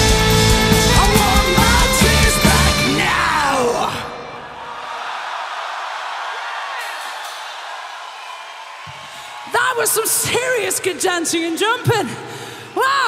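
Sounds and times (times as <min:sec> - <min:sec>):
heavy metal band playing: 0:00.0 - 0:04.2
festival crowd cheering and whooping: 0:00.2 - 0:10.8.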